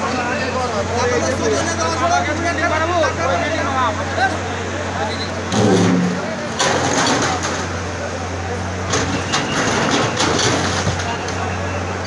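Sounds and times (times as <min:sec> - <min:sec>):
crowd chatter: 0:00.0 - 0:12.0
excavator diesel engine running: 0:00.0 - 0:12.0.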